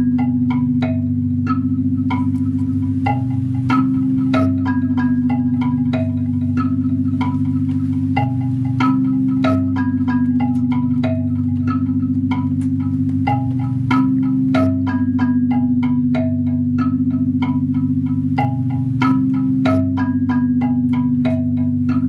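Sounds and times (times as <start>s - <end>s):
chime-like ringing notes: 0.0s - 22.0s
low synthesizer drone: 0.0s - 22.0s.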